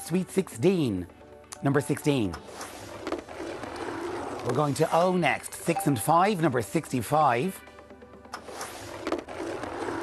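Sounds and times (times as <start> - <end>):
faint background music: 0.0 - 10.0
bingo ball rolling and rattling: 3.0 - 5.2.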